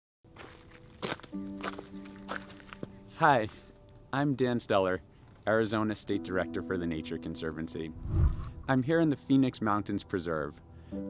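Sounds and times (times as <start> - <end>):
footsteps crunching on rocky dirt: 0.3 - 3.8.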